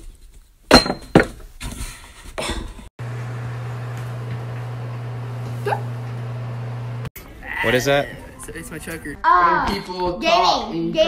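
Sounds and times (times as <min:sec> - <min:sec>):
steady low hum: 0:03.0 - 0:07.1.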